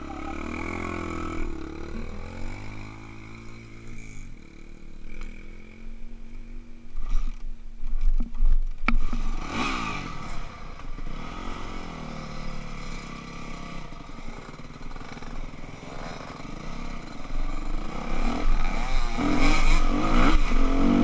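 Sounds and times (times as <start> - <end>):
dirt bike engine revving: 0.0 - 5.9, 9.0 - 21.0.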